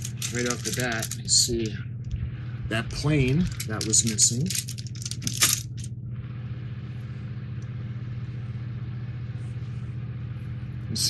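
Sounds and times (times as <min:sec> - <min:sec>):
plastic bag crinkling: 0:00.0 - 0:01.7, 0:03.2 - 0:05.9
steady low hum: 0:00.0 - 0:11.0.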